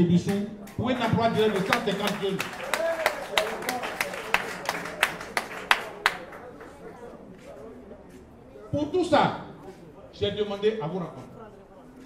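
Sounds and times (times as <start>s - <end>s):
rhythmic hand clapping: 0.1s - 7.0s.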